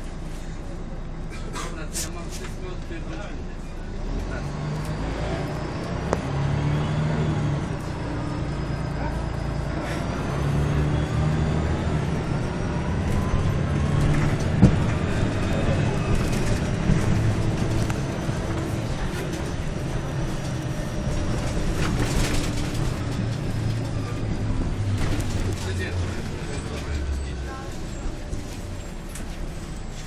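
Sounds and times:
diesel bus engine running: 0.0 - 30.0.

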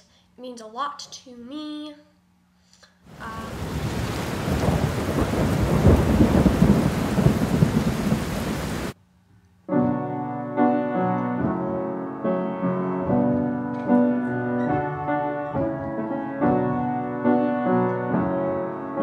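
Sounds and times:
heavy rain: 3.1 - 9.0
thunder rumbling: 3.1 - 9.0
piano chords: 9.7 - 19.0.

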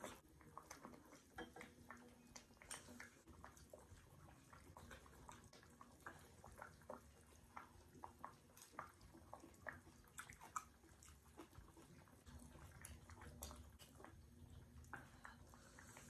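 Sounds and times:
slurping and chewing noodles: 0.0 - 16.0.

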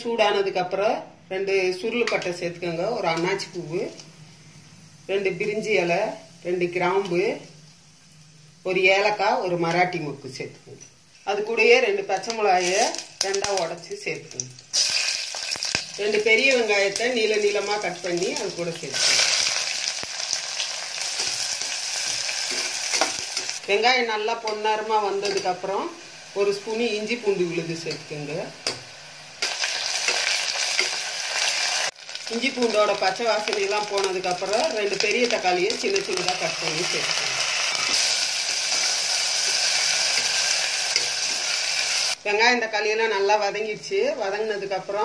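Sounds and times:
onions sizzling in hot oil: 2.1 - 45.0.

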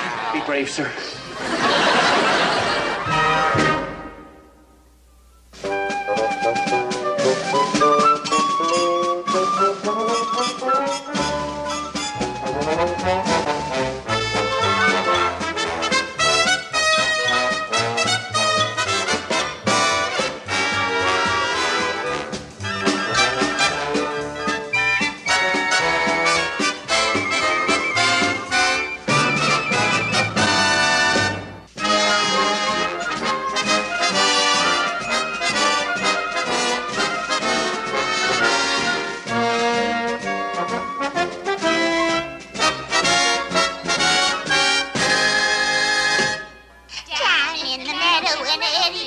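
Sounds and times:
orchestral music led by brass: 3.0 - 4.6, 5.6 - 46.8.

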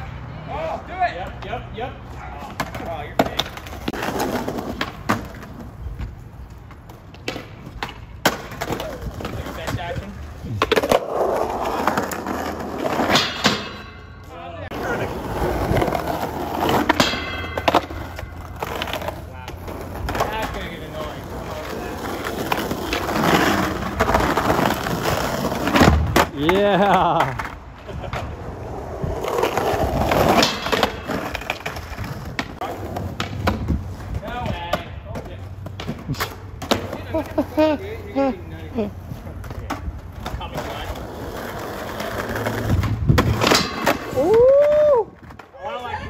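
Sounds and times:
skateboard wheels rolling on concrete: 0.0 - 46.0
skateboard clacking and landing: 2.5 - 14.2, 14.8 - 37.2, 39.4 - 45.6.

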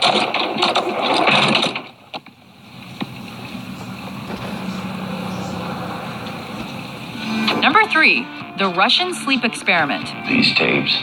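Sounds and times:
low hum: 2.3 - 8.5.

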